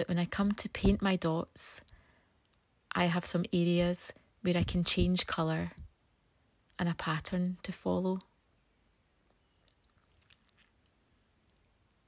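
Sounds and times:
woman speaking: 0.0 - 1.8, 2.9 - 5.8, 6.8 - 8.3.

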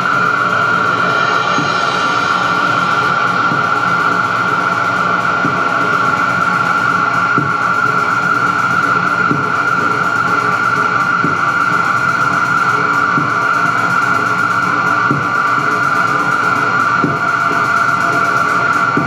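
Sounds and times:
electronic noise drone: 0.0 - 19.0.

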